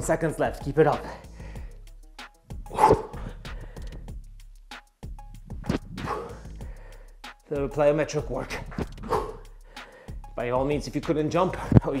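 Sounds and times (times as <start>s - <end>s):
man huffing exhale: 2.7s - 4.1s, 6.0s - 7.2s, 9.0s - 10.2s.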